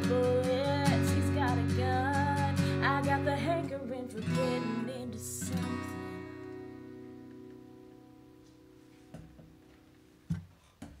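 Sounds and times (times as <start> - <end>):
acoustic guitar chord ringing: 0.0 - 10.2.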